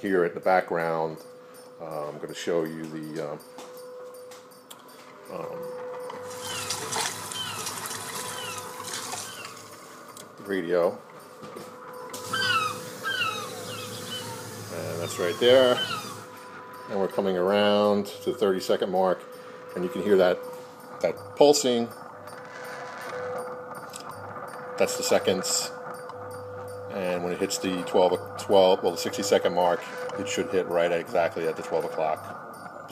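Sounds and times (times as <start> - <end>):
faint steady tone: 0.0 - 32.9.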